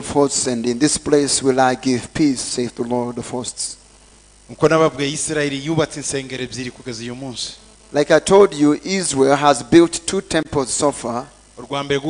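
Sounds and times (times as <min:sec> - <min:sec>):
man speaking into a microphone: 0:00.0 - 0:03.8, 0:04.5 - 0:12.0.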